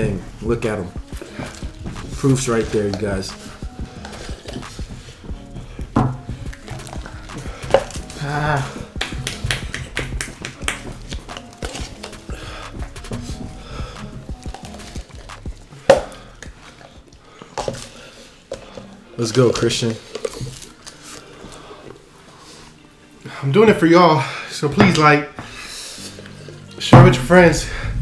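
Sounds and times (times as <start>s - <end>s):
faint music: 0.0s - 28.0s.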